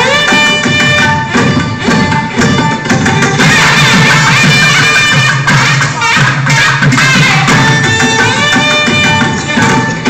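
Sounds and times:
hand-drum strokes: 0.0 - 10.0
sliding melody: 0.0 - 10.0.

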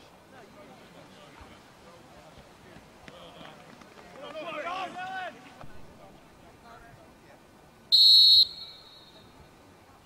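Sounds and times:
referee's whistle blast: 7.9 - 9.2.

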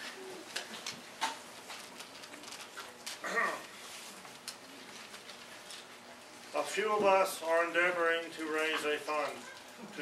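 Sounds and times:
person short vocal sound: 3.2 - 3.7.

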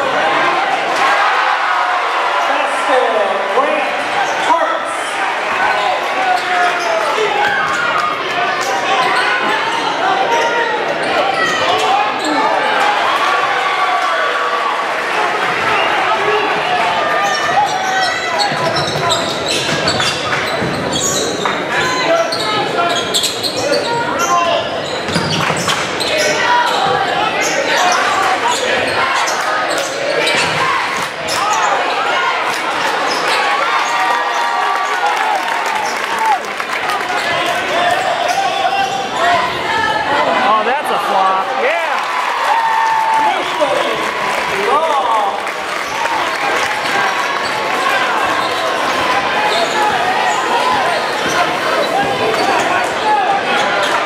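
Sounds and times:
crowd chatter and shouting: 0.0 - 54.0.

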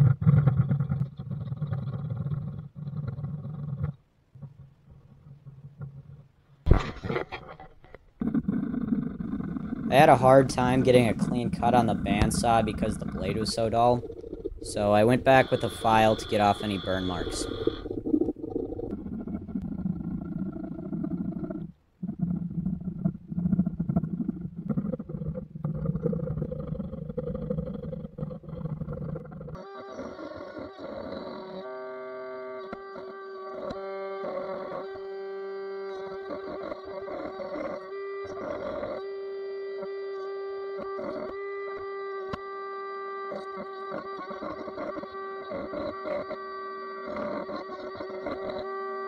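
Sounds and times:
router bit cutting wood: 14.7 - 17.8
trim router motor whining: 14.7 - 17.8.

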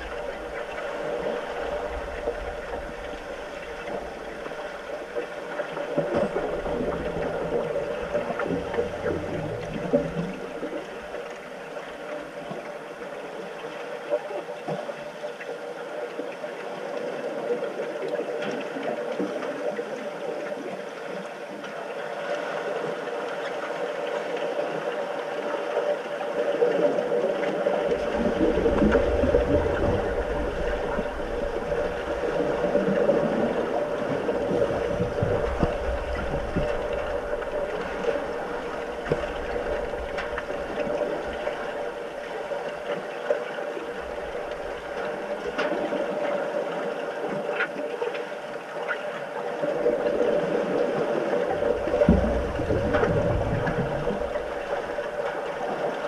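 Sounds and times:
muffled underwater hum: 0.0 - 21.9, 26.4 - 56.0
deep rumble of churning water: 0.0 - 56.0.

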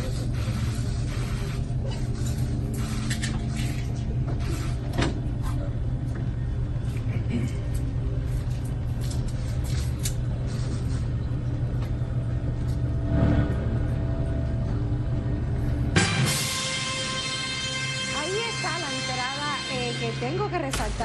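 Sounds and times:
low room rumble: 0.0 - 21.0.

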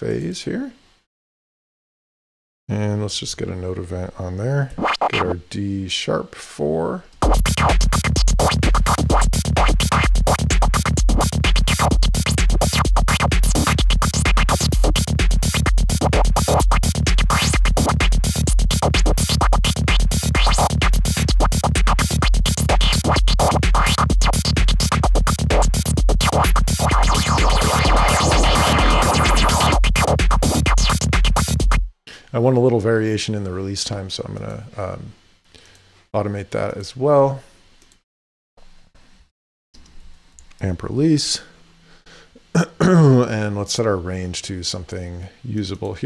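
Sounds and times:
distorted synth lead: 7.2 - 31.8
bass line: 7.2 - 31.9
steady kick drum: 7.2 - 31.9.

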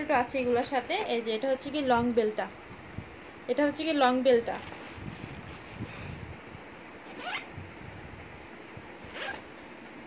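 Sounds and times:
bag handling rustle: 4.5 - 5.9, 7.0 - 7.5, 9.1 - 10.0
zipper being pulled: 7.0 - 7.6, 9.0 - 9.6.

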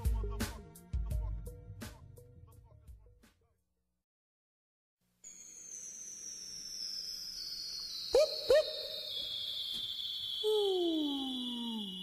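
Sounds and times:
high whistling tone gliding down: 5.3 - 12.0
short hoot-like calls: 8.2 - 8.9.

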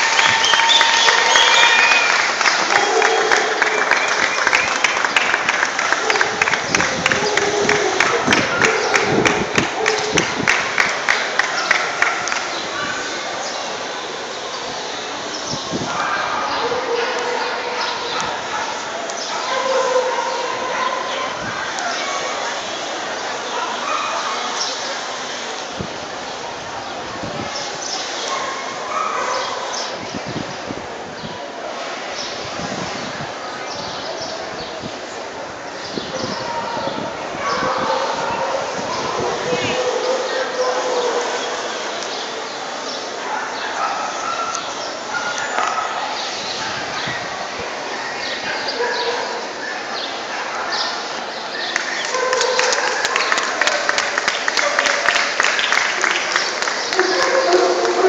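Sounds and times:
distant dogs barking: 0.0 - 13.4, 15.7 - 25.1, 28.2 - 30.0, 36.0 - 58.0
crowd chatter: 0.0 - 58.0
indoor arena din: 0.0 - 58.0.

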